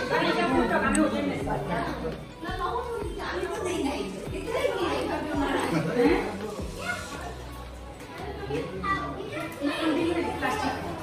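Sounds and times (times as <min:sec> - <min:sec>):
children chattering and calling out: 0:00.0 - 0:11.0
people talking in background: 0:00.0 - 0:11.0.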